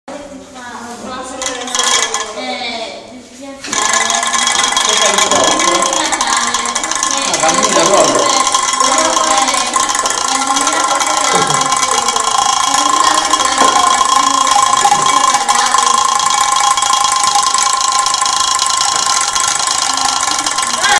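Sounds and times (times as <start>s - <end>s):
tin cans rattling: 1.3s - 2.4s, 3.7s - 20.9s
small electric motor whirring: 3.7s - 20.9s.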